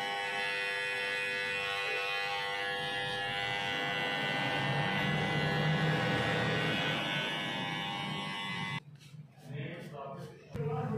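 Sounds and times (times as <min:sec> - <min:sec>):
beard trimmer buzzing: 0:00.0 - 0:08.8.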